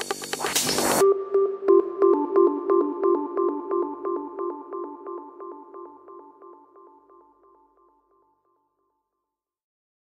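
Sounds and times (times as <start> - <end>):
synthesizer note pattern: 0.0 - 8.0.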